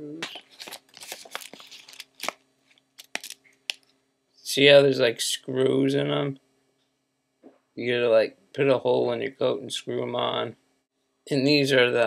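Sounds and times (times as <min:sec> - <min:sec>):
plastic bag of screws rustling: 0:00.3 - 0:02.4, 0:03.0 - 0:03.4.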